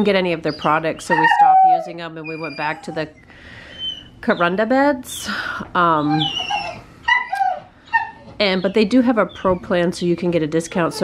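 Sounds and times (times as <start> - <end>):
dog whimpering: 0.4 - 4.6, 5.9 - 9.9, 10.6 - 11.0.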